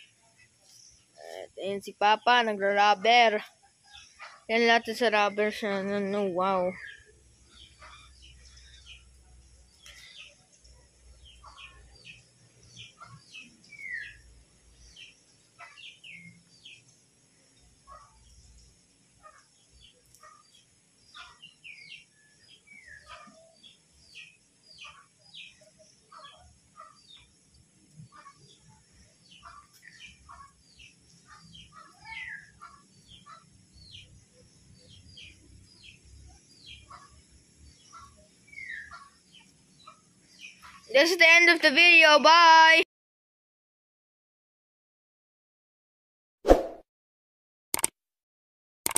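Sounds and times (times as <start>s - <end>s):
birds chirping: 0.0s - 42.8s.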